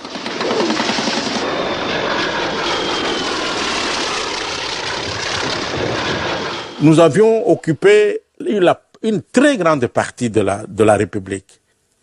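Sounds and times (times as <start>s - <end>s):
aircraft engine droning: 0.0s - 8.1s.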